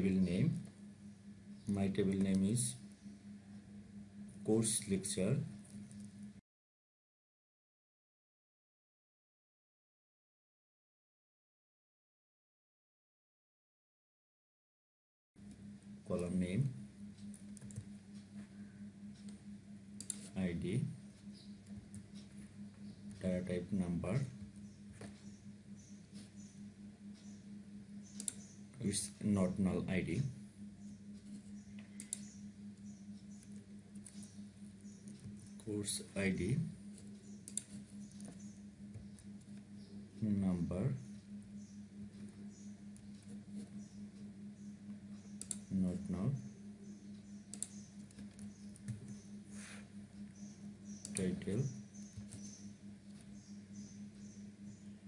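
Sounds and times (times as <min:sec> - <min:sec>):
low steady hum: 0:00.0 - 0:06.4, 0:15.4 - 0:55.0
computer mouse clicking: 0:17.2 - 0:18.3, 0:20.0 - 0:20.4, 0:28.0 - 0:28.6, 0:31.2 - 0:32.4, 0:36.9 - 0:39.6, 0:45.1 - 0:45.7, 0:47.1 - 0:49.2, 0:50.4 - 0:51.4
faint ticks: 0:50.2 - 0:51.2.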